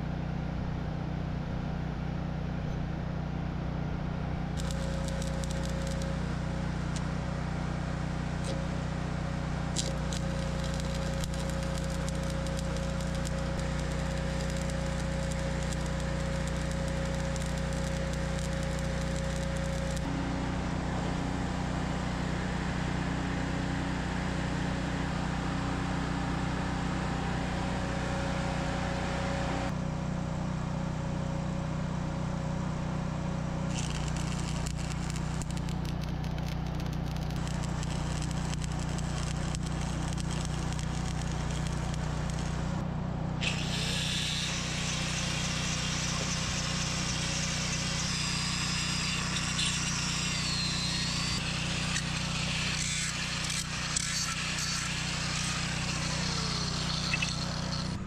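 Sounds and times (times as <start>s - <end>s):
low hum: 0.0s - 22.2s, 33.3s - 58.0s
arc welding crackling sizzle: 4.5s - 20.1s, 33.7s - 42.8s, 43.4s - 58.0s.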